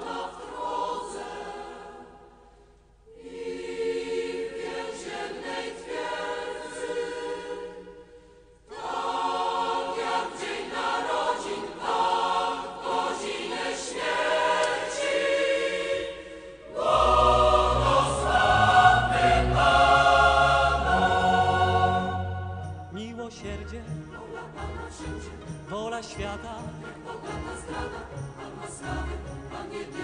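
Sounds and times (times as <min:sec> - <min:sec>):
choir singing sustained chords: 0:00.0 - 0:25.7, 0:26.4 - 0:30.0.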